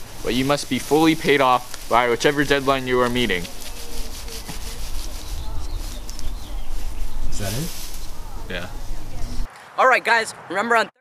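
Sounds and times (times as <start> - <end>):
tinsel rustling and crinkling: 0.0 - 9.5.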